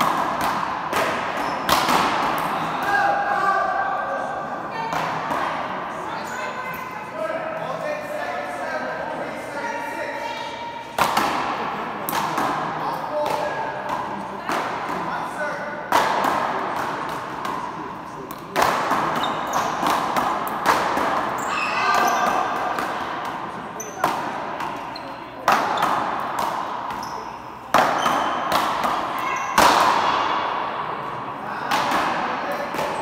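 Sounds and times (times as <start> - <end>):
voices: 0.4 - 33.0.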